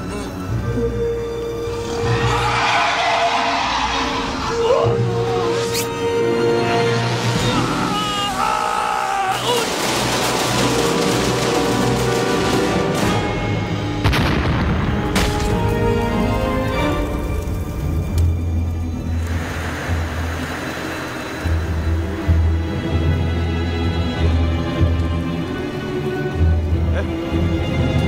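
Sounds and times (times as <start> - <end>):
dramatic music: 0.0 - 28.0
man yelling: 7.5 - 9.7
booming impact effects: 14.0 - 15.7.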